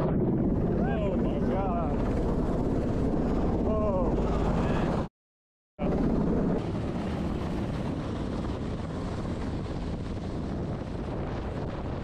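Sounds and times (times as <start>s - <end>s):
helicopter rotor and turbine rumble: 0.0s - 5.1s, 5.8s - 12.0s.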